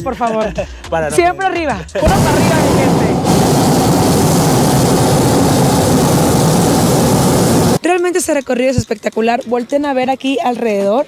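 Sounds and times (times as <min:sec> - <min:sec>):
gas burner roaring: 0:02.0 - 0:07.8.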